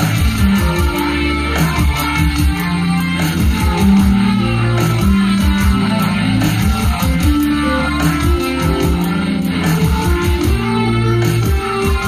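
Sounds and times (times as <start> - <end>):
keytar with guitar-like voice: 0.0 - 12.0.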